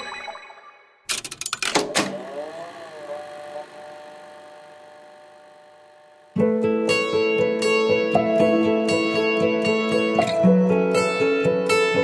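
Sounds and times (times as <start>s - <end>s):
tape machine mechanical clicks: 1.1s - 2.2s.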